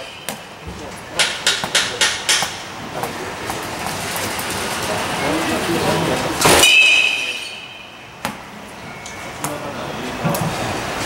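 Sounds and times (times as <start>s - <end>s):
rumbling mechanical noise: 0.0s - 11.0s
metal bat hitting ball: 6.4s - 8.4s.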